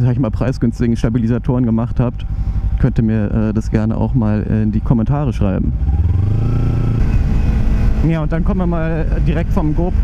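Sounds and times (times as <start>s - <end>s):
motorcycle engine running: 0.0s - 10.0s
wind noise on microphone: 5.8s - 8.1s.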